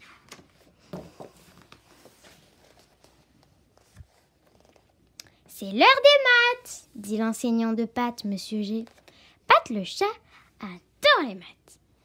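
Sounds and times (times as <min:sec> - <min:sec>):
book handling: 0:00.2 - 0:05.2.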